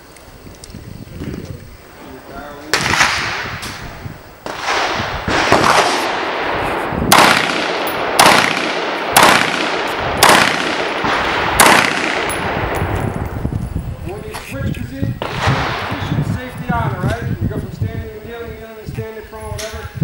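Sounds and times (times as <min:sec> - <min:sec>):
rifle shots with echo: 0:02.7 - 0:13.0, 0:15.2 - 0:16.5.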